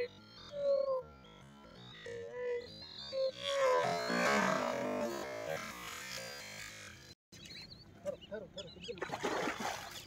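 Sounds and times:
bird calls chirping: 0:00.0 - 0:10.0
fish thrashing in water: 0:09.1 - 0:10.0.

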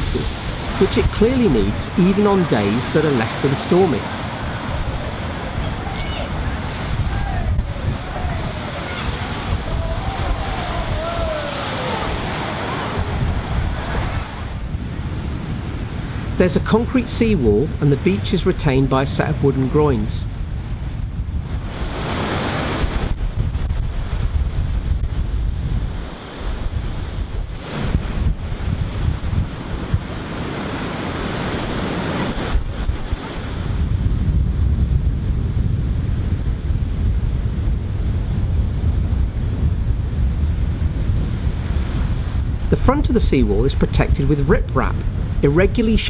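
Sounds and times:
sea waves breaking against wall: 0:00.0 - 0:34.5, 0:35.9 - 0:46.0
wind buffeting microphone: 0:00.0 - 0:46.0.

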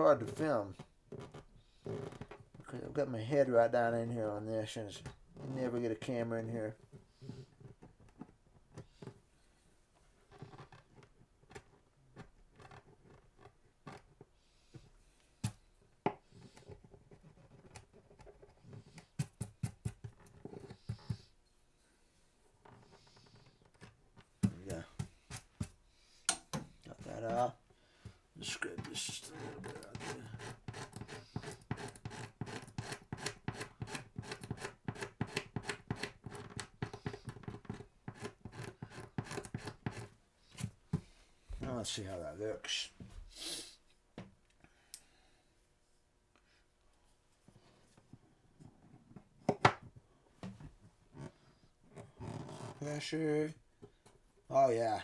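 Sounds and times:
chisel scraping wood: 0:28.8 - 0:40.1.

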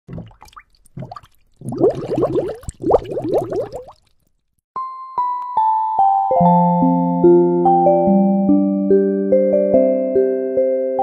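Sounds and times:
rising watery bloops: 0:00.0 - 0:04.3.

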